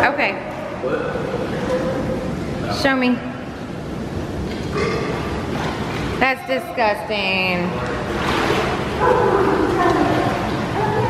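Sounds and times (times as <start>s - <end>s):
pool water wash: 0.0s - 11.0s.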